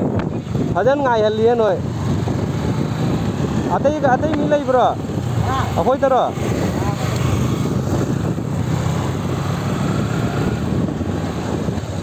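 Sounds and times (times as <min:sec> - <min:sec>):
road and wind noise: 0:00.0 - 0:12.0
motorcycle engine running: 0:01.8 - 0:12.0.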